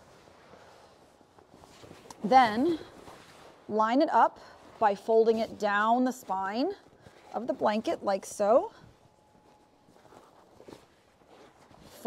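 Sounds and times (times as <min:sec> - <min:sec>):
blanket rustling: 0:00.0 - 0:12.0.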